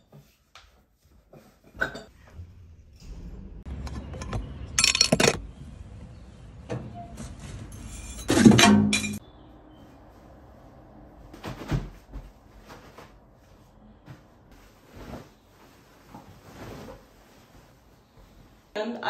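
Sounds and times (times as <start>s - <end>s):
glass clinking and crashing: 4.7s - 5.4s, 7.8s - 9.2s.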